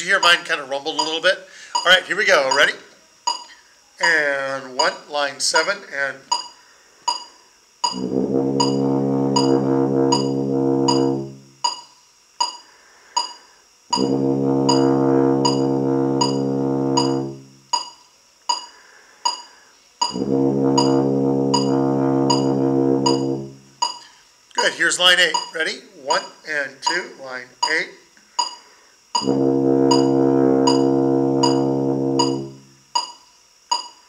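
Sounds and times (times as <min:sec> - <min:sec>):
click beat: 0:01.8 - 0:04.2, 0:07.1 - 0:12.6, 0:13.2 - 0:18.7, 0:19.3 - 0:25.7, 0:26.8 - 0:34.0
tuba long low notes: 0:07.9 - 0:11.6, 0:13.9 - 0:17.6, 0:20.0 - 0:23.8, 0:29.2 - 0:32.8.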